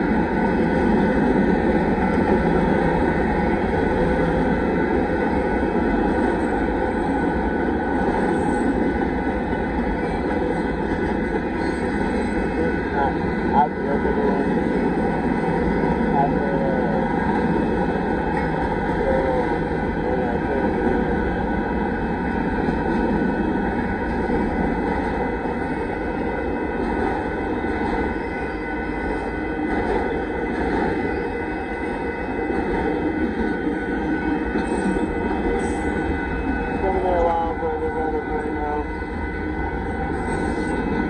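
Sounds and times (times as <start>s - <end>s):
freight train wheels clattering: 0.0s - 16.1s, 16.9s - 36.8s.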